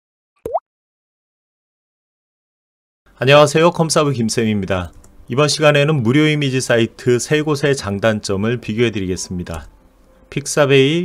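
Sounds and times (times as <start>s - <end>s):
bloop pop rising in pitch: 0.4s - 0.6s.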